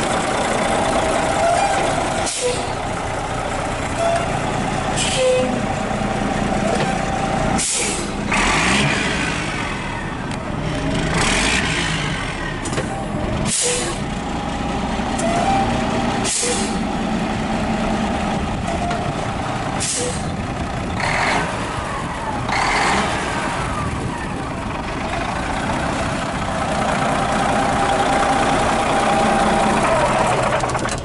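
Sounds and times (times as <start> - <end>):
diesel truck engine idling: 0.0 - 11.2, 11.8 - 31.0
short sharp air hisses: 7.6 - 8.1, 13.5 - 14.0, 16.3 - 16.8.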